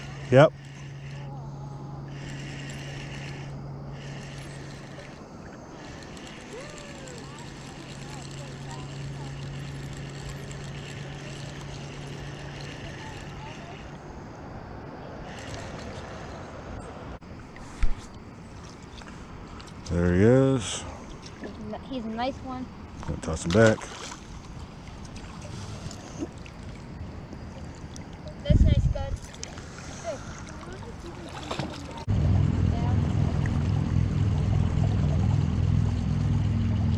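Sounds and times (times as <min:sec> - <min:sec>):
spinning reel whirring: 0:00.0 - 0:01.4, 0:02.0 - 0:14.0, 0:15.3 - 0:16.1.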